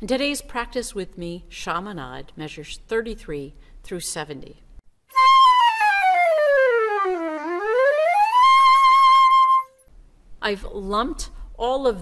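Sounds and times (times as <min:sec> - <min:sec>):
gliding flute tone: 0:05.1 - 0:09.9.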